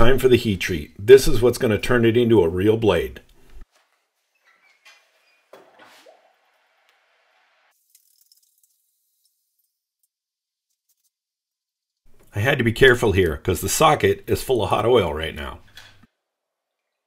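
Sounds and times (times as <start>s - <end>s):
hot steel sizzling in oil: 6.1s - 10.2s.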